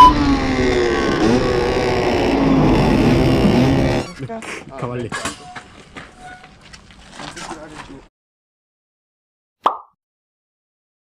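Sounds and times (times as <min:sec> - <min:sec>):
two-stroke motorcycle engine revving: 0:00.0 - 0:04.1.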